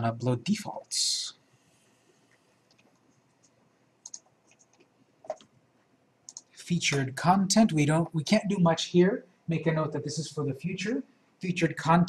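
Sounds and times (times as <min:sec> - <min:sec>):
computer mouse clicks: 0:02.3 - 0:05.6, 0:06.3 - 0:07.1.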